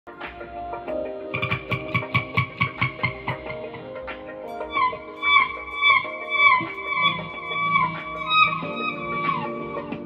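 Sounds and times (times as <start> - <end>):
electric guitar with effects: 0.2 - 10.0
quick steady beat: 1.4 - 3.7.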